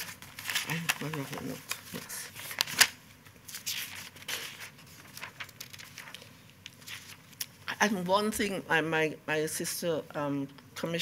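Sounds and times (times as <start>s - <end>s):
paper rustling: 0.0s - 7.5s.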